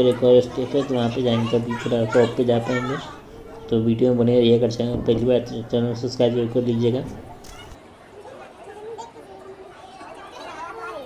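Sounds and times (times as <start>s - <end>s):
children's voices: 0.0s - 11.0s
people talking: 0.0s - 11.0s.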